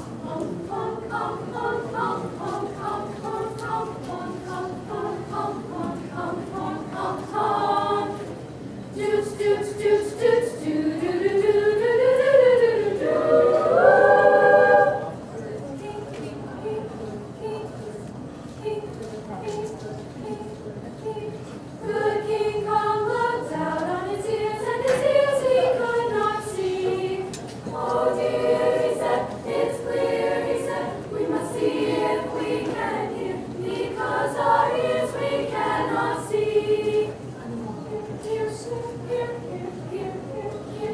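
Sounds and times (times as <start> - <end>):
women's choir singing a cappella: 0.0 - 40.9.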